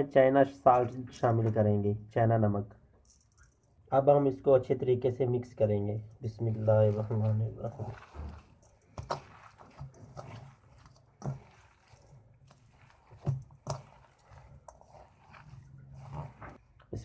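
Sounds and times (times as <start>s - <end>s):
hand squishing mashed potato: 5.3s - 17.0s.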